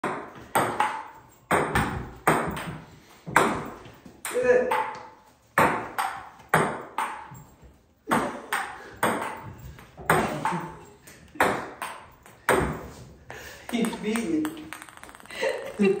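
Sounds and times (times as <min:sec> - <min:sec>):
ping pong ball clicking: 0:04.2 - 0:07.4, 0:08.5 - 0:09.5, 0:11.4 - 0:12.6, 0:13.7 - 0:16.0.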